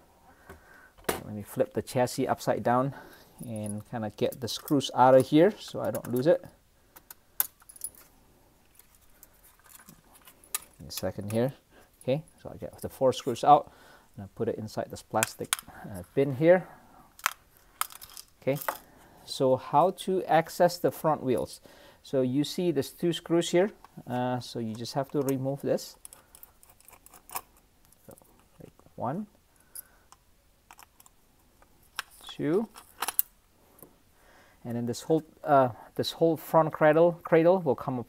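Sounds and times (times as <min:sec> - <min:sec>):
screwdriver clicking and scraping: 0:26.0 - 0:28.5.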